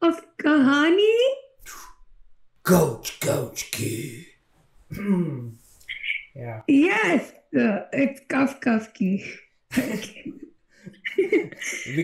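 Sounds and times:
person's wordless vocal sound: 0:01.6 - 0:06.6.

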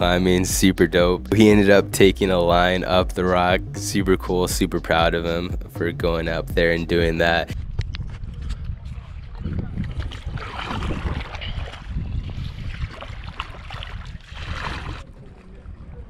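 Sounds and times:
wind buffeting microphone: 0:07.5 - 0:16.0
paddle strokes splashing water: 0:08.9 - 0:15.6.

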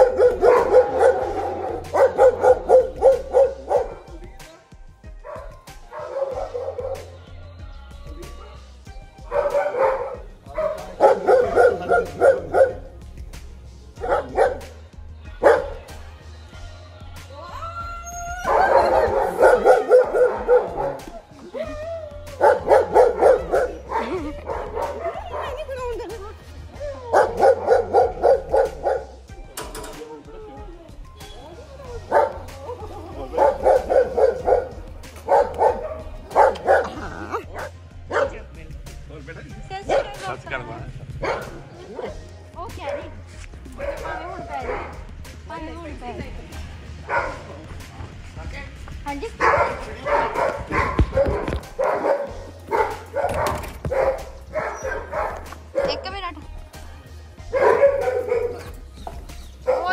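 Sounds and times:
dog barking: 0:00.0 - 0:04.2, 0:05.2 - 0:07.1, 0:09.2 - 0:12.9, 0:14.0 - 0:14.8, 0:15.4 - 0:15.9, 0:18.4 - 0:21.2, 0:22.4 - 0:25.8, 0:27.1 - 0:29.2, 0:31.8 - 0:32.5, 0:33.3 - 0:38.4, 0:39.9 - 0:40.4, 0:41.2 - 0:42.2, 0:42.8 - 0:45.1, 0:47.0 - 0:47.6, 0:49.4 - 0:56.2, 0:57.4 - 0:58.9, 0:59.6 - 0:59.9
music: 0:00.0 - 0:59.9
voices: 0:00.0 - 0:59.9.

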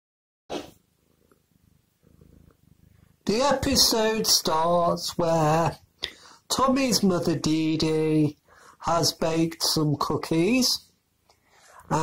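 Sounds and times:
low grainy microphone rumble: 0:00.9 - 0:05.9.

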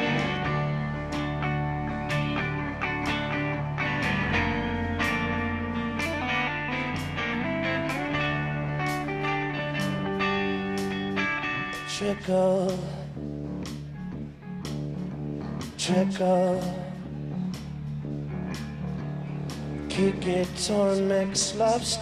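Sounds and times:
rock band playing: 0:00.0 - 0:12.9.

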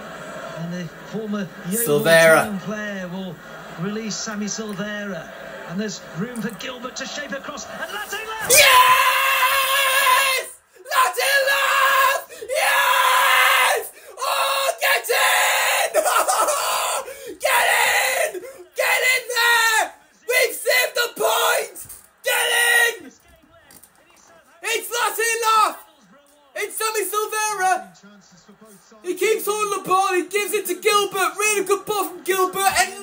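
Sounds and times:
young man screaming and yelling: 0:08.4 - 0:23.0.

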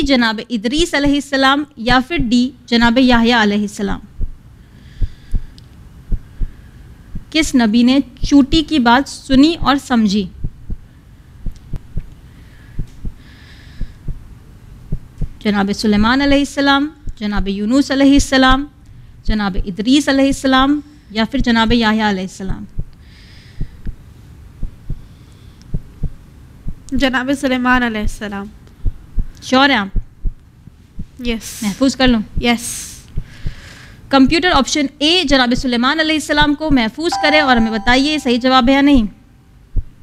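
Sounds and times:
heartbeat thuds: 0:01.9 - 0:02.4, 0:04.1 - 0:04.4, 0:06.1 - 0:07.3, 0:10.4 - 0:12.1, 0:12.8 - 0:13.2, 0:13.8 - 0:14.3, 0:14.9 - 0:15.4, 0:22.5 - 0:22.9, 0:24.6 - 0:25.0, 0:28.8 - 0:29.3, 0:30.0 - 0:30.4
faint hum: 0:37.1 - 0:40.0.

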